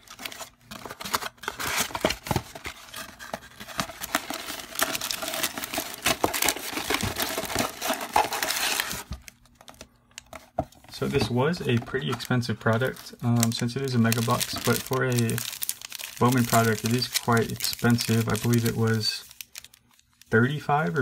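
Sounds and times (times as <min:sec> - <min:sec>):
cardboard box ripping and crinkling: 0:00.1 - 0:09.2, 0:14.0 - 0:19.7.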